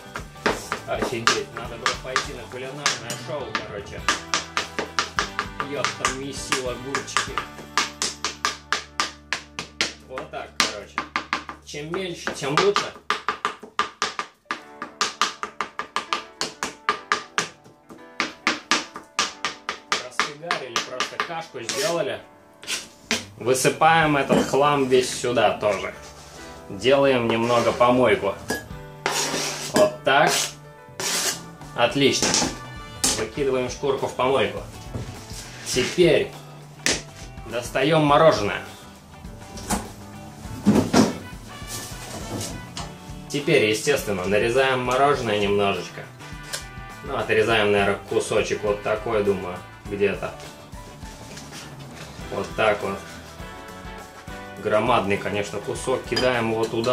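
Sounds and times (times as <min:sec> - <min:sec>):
background music: 0:00.0 - 0:56.9
knife chopping on plastic board: 0:00.1 - 0:21.9.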